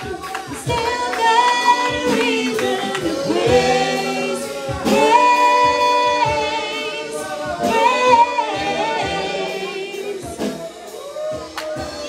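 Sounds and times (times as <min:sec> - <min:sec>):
keyboard accompaniment: 0:00.0 - 0:12.0
voices singing gospel song: 0:00.0 - 0:12.0.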